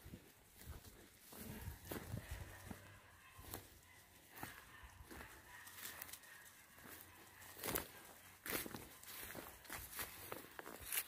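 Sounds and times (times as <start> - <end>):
footsteps in dry grass: 0.0 - 11.0.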